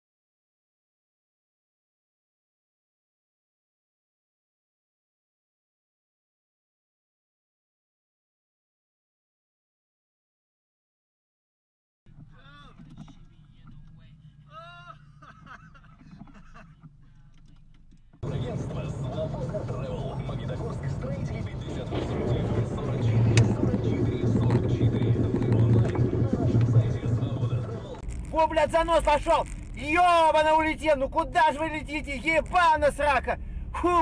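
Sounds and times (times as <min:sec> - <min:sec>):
car engine and road noise: 0:12.1 - 0:14.5, 0:15.7 - 0:34.0
faint voices: 0:17.2 - 0:28.1.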